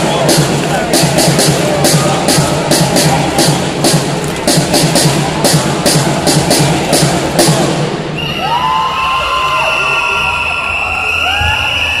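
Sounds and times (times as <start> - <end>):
cheerdance music with pounding beat: 0.0 - 8.2
crowd cheering and screaming: 8.1 - 12.0.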